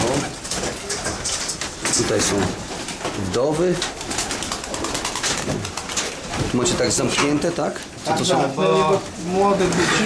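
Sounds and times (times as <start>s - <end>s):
birds rustling and clicking: 0.0s - 10.0s
pigeons cooing: 3.7s - 6.4s.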